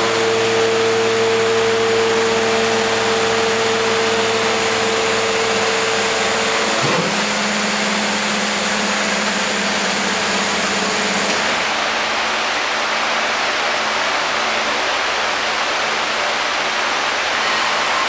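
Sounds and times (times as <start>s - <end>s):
hydraulic pump whine: 0.0s - 13.3s
hydraulic press hissing: 5.9s - 11.7s.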